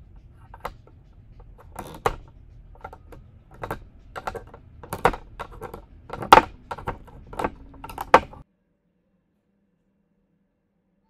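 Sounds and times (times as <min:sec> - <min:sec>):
plastic counters clicking on pegs: 0:00.2 - 0:08.4.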